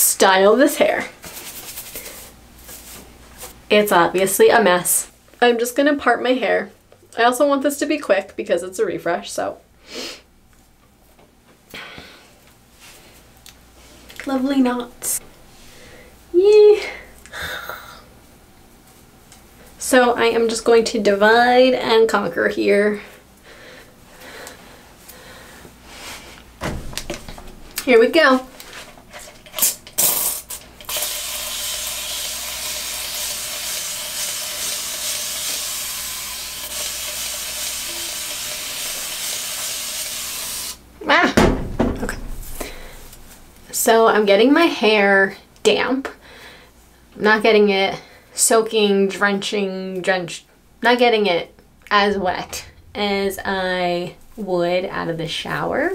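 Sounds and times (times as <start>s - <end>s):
faint low room hum: 0.0s - 55.9s
hair rustling: 1.2s - 3.6s.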